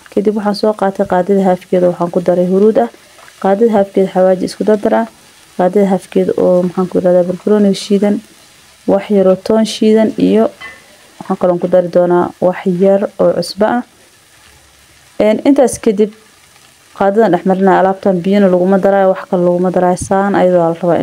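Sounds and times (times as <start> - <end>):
woman's voice in pitched phrases: 0.0 - 8.3, 8.9 - 13.9, 15.2 - 16.2, 17.0 - 21.0.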